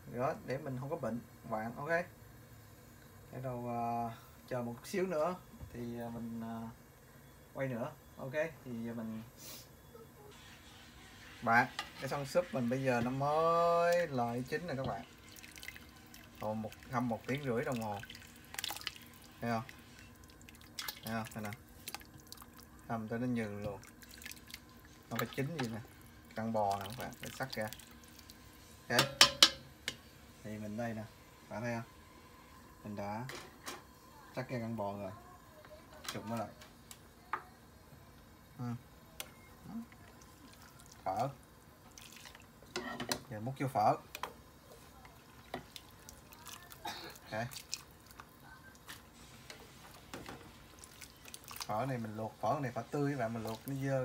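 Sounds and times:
boiling water: 0:00.0 - 0:54.0
broth simmering: 0:00.0 - 0:54.0
ladle stirring in pot: 0:10.3 - 0:30.2, 0:41.8 - 0:43.3, 0:44.1 - 0:53.9
liquid dripping: 0:14.8 - 0:22.9, 0:23.5 - 0:28.4, 0:39.8 - 0:42.7, 0:45.3 - 0:48.9, 0:50.7 - 0:52.0
ladle clicking against pot: 0:29.0 - 0:30.0.

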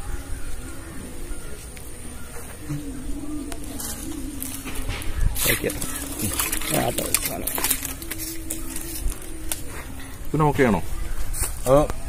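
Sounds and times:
low drawn-out bird call: 0:00.0 - 0:12.0.

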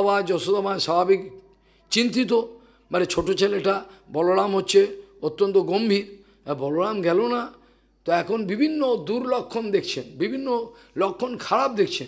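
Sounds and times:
man talking into a microphone: 0:00.0 - 0:12.0.

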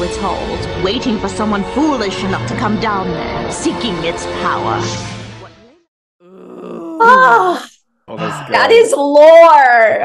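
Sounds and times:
person drawn-out ohh: 0:06.2 - 0:08.6.

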